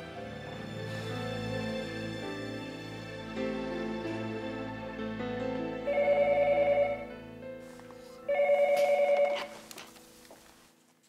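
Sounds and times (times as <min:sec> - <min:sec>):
desk telephone trilling rings: 0:05.9 - 0:07.0, 0:08.3 - 0:09.6.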